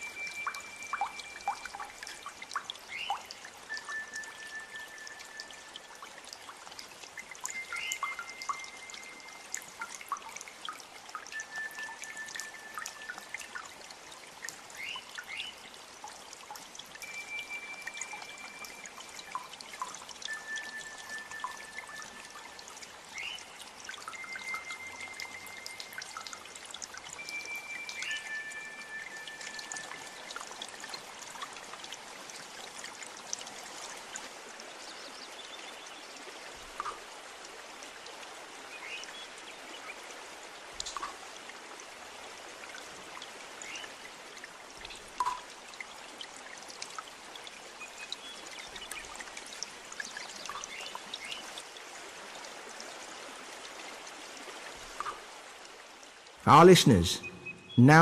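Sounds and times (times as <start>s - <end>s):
trickling flowing water: 0.0s - 58.0s
whistled notes: 3.7s - 5.4s, 56.5s - 58.0s
short high chirps: 56.5s - 58.0s.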